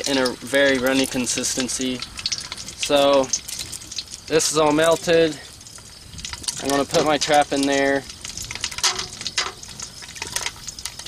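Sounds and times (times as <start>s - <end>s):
hot wax sizzling: 0.0s - 11.0s
sharp clicks and crackles: 0.0s - 11.0s.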